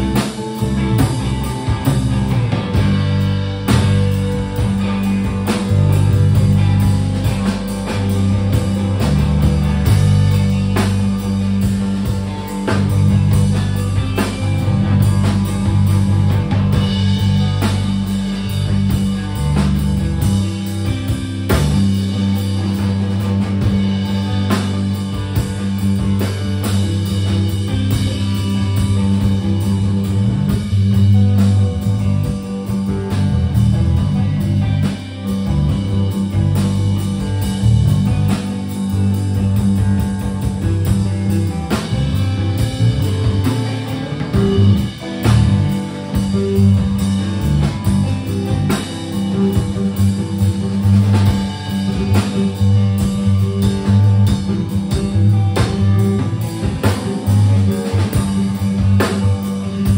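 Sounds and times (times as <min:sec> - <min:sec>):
bass guitar: 0:00.0 - 0:59.9
drum kit: 0:00.0 - 0:59.9
electric guitar through effects: 0:00.0 - 0:59.9.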